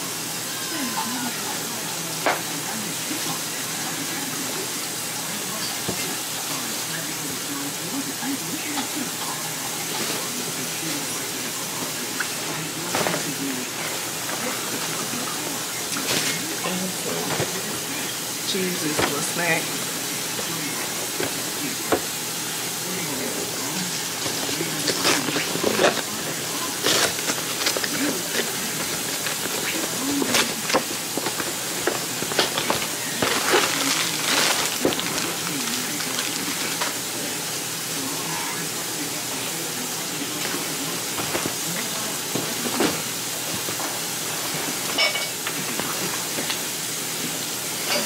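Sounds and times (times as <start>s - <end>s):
steady hiss: 0.0s - 48.0s
plastic and paper bags crinkling: 8.7s - 46.7s.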